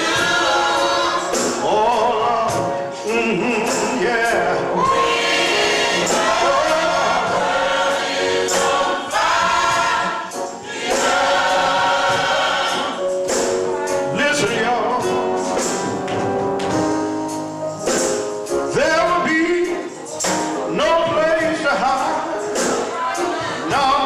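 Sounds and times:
percussion hits: 0:00.0 - 0:02.8, 0:03.6 - 0:24.0
gospel choir singing: 0:00.0 - 0:16.0, 0:19.0 - 0:24.0
instrumental accompaniment: 0:00.0 - 0:24.0.

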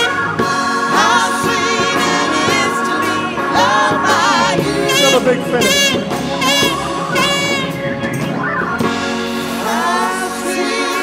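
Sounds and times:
live soul band playing: 0:00.0 - 0:11.0
voices singing long notes: 0:00.0 - 0:11.0.

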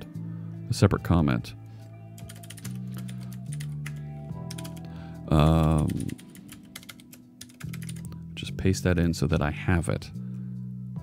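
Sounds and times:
background music: 0:00.0 - 0:11.0
keyboard typing: 0:02.2 - 0:04.9, 0:05.6 - 0:08.1.

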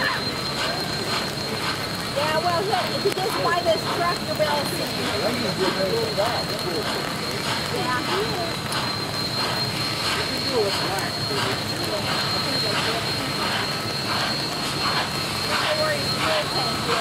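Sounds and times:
people chattering: 0:00.0 - 0:17.0
steam hissing roar: 0:00.0 - 0:17.0
steam locomotive chuffing: 0:00.0 - 0:17.0.

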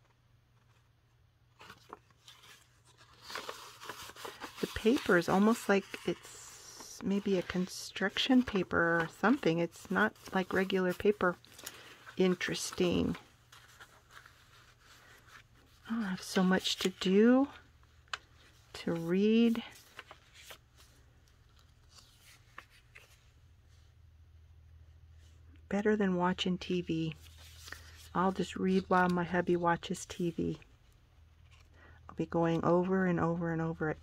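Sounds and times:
paper crinkling and rustling: 0:00.0 - 0:23.8, 0:27.2 - 0:32.7
woman speaking: 0:04.6 - 0:11.4, 0:12.2 - 0:13.3, 0:15.8 - 0:17.6, 0:18.8 - 0:19.8, 0:25.7 - 0:27.2, 0:28.1 - 0:30.6, 0:32.2 - 0:34.0.

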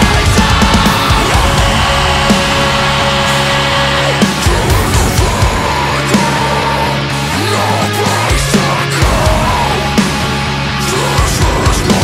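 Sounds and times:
heavy distorted metal music: 0:00.0 - 0:12.0.

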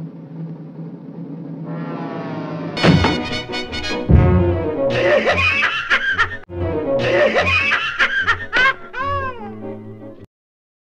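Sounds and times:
music score: 0:01.8 - 0:05.5
cartoon cat snickering laugh: 0:07.0 - 0:09.6.

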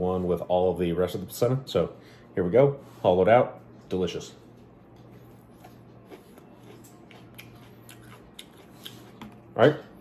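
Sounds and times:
low steady hum: 0:00.0 - 0:10.0
chili pepper crunching when chewed: 0:05.0 - 0:09.7.

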